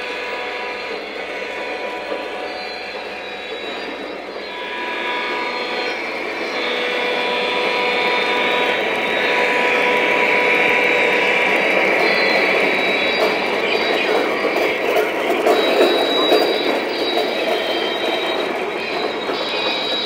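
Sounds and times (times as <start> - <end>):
model train rumbling past: 0.0 - 20.0.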